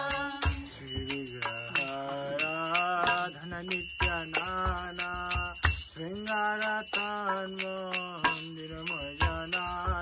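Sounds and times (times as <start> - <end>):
low drum beats: 0.0 - 1.5
devotional singing: 0.0 - 10.0
hand bell ringing rapidly: 0.0 - 10.0.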